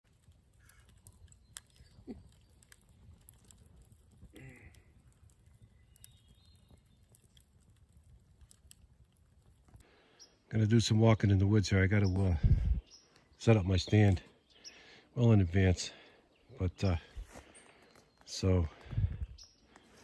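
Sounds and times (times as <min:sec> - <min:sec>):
campfire crackling: 0:00.0 - 0:20.0
fire popping: 0:00.0 - 0:20.0.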